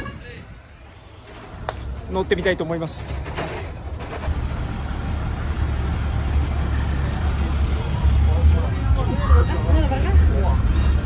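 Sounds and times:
bus engine idling: 0:03.8 - 0:11.0.

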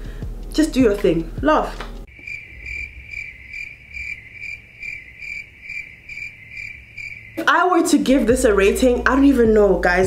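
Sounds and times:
cricket chirping: 0:02.1 - 0:07.6.

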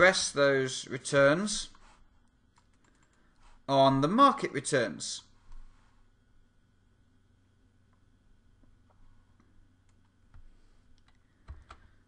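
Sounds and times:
keystrokes on computer keyboard: 0:02.6 - 0:03.3, 0:09.9 - 0:11.9.

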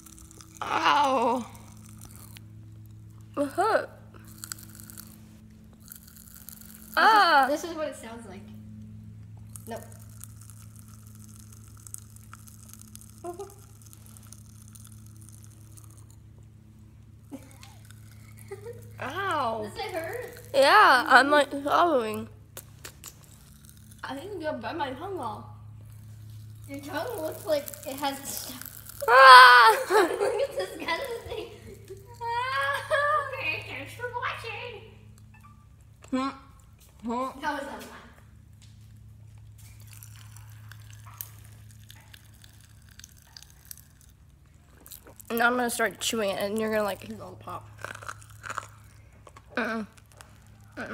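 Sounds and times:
popping candy crackling in mouth: 0:00.0 - 0:03.5, 0:04.1 - 0:07.6, 0:08.7 - 0:24.4, 0:25.8 - 0:32.4, 0:38.4 - 0:50.9
steady low hum: 0:00.0 - 0:50.9
candy popping in a mouth: 0:09.5 - 0:16.1, 0:26.7 - 0:29.5.

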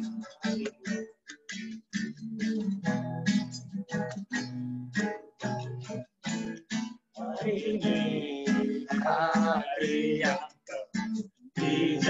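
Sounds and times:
acoustic guitar strumming: 0:00.0 - 0:12.0
person singing: 0:05.0 - 0:12.0.

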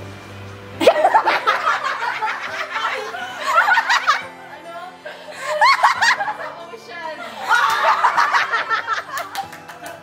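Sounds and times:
people laughing: 0:00.8 - 0:10.0.

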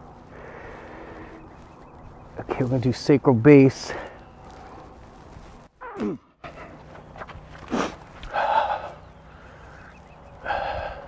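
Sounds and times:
horse blowing out breath: 0:07.6 - 0:09.2.

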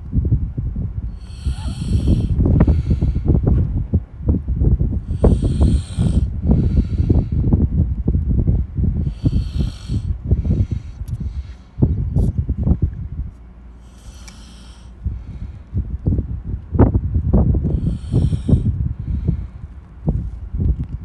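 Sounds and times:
low rumble on microphone: 0:00.0 - 0:21.0
breath-like hisses: 0:01.1 - 0:03.5, 0:05.0 - 0:07.5, 0:09.0 - 0:11.8, 0:13.8 - 0:15.6, 0:17.7 - 0:19.6.

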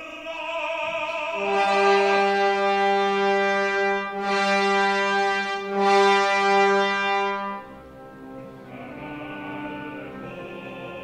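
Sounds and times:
brass section holding a chord: 0:01.4 - 0:11.0.

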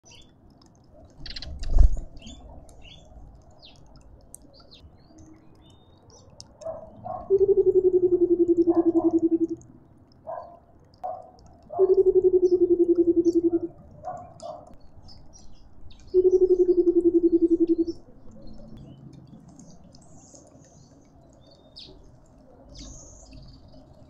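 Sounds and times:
small birds chirping: 0:00.0 - 0:24.0
bird bubbling low hoots: 0:06.8 - 0:09.7, 0:11.6 - 0:14.8, 0:16.0 - 0:18.8.

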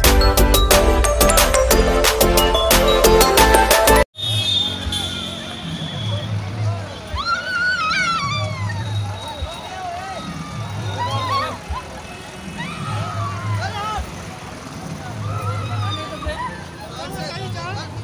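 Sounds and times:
song over loud sound system: 0:00.0 - 0:04.1.

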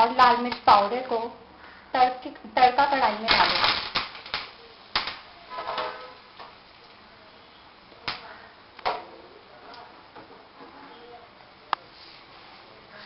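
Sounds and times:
spices crackling in hot oil: 0:02.8 - 0:05.4.

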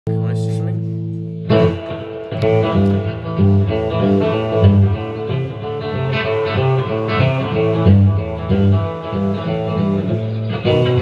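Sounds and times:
electric guitar chords: 0:00.1 - 0:11.0.

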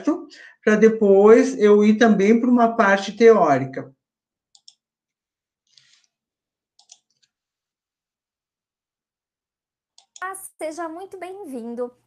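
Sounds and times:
faint computer mouse clicks: 0:04.5 - 0:04.8, 0:06.8 - 0:07.3.

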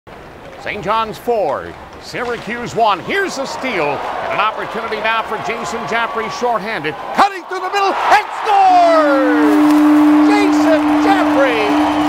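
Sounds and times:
crowd cheering: 0:02.2 - 0:12.0
goal horn low tone: 0:08.7 - 0:12.0.

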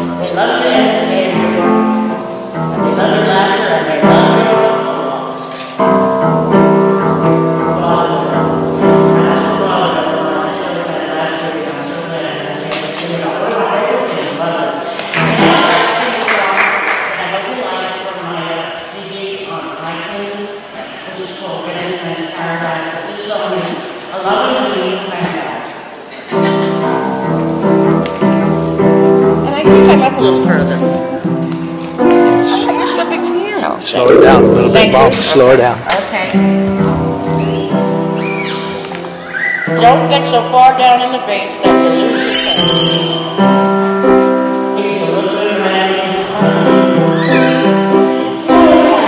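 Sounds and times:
piano chords ringing: 0:00.0 - 0:12.4, 0:26.6 - 0:38.2, 0:43.0 - 0:49.0.

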